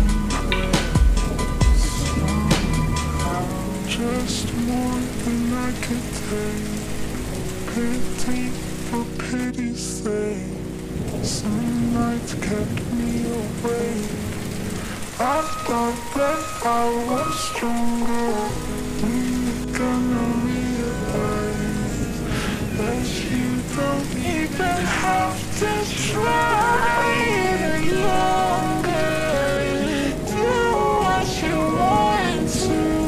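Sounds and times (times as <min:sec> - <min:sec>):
person singing: 0:00.0 - 0:06.8, 0:07.7 - 0:10.6, 0:11.2 - 0:33.0
rain falling: 0:00.0 - 0:33.0
slowed reverb-heavy song: 0:00.0 - 0:33.0.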